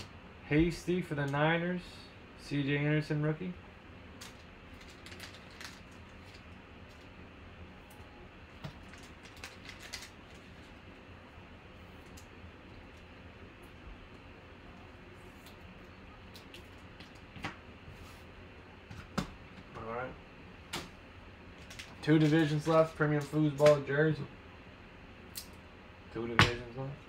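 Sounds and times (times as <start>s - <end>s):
low room hum: 0.0s - 27.0s.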